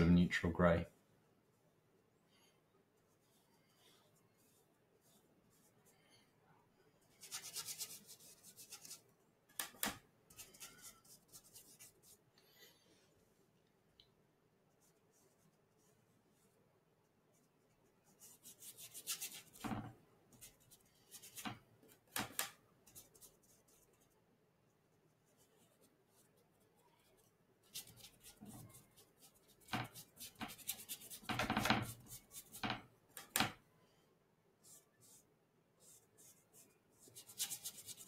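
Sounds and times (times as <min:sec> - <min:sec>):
paintbrush scrubbing on canvas: 0:07.1 - 0:09.0.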